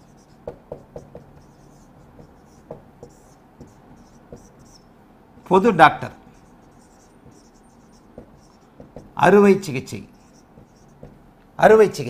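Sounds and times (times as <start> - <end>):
marker scratching on whiteboard: 0.0 - 11.2.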